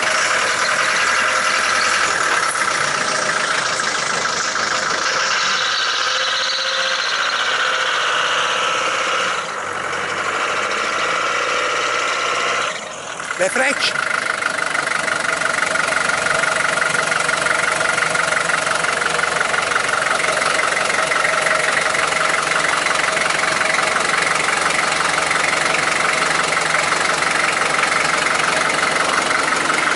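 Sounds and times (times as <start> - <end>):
car engine idling: 0.0 - 29.9.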